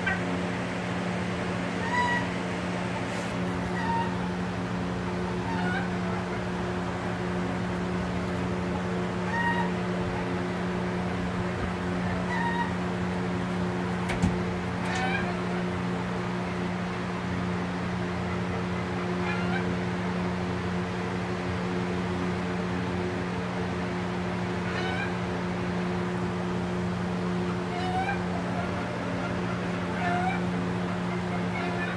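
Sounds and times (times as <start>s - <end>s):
turkeys mewing calls: 0.0s - 21.4s, 24.3s - 31.9s
steady low hum: 0.0s - 31.9s.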